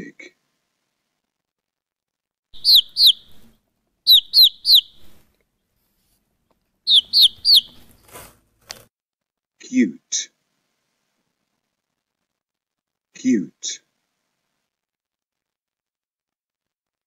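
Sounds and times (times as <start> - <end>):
chicks peeping: 2.6 - 5.3, 6.8 - 8.1.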